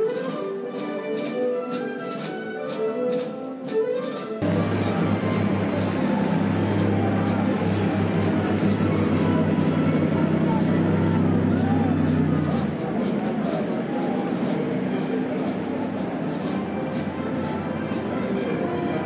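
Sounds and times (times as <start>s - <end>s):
diesel military vehicles driving past: 4.4s - 19.0s
voices: 4.4s - 19.0s.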